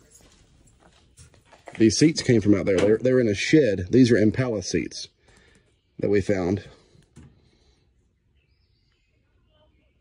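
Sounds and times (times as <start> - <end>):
faint high bird chirps: 8.0 - 10.0.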